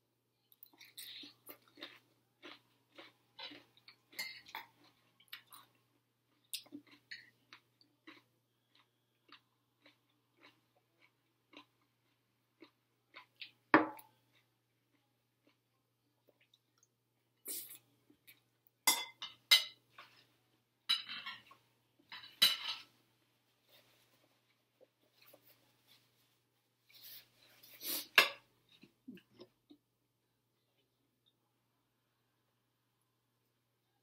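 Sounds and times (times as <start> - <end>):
person chewing crunchy food: 0.5 - 18.5.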